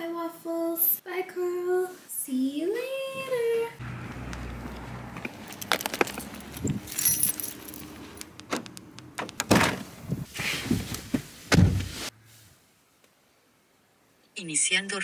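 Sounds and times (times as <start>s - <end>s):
keys jangling: 5.3s - 8.3s
handling clicks: 8.1s - 9.5s
car door shutting: 8.4s - 12.0s.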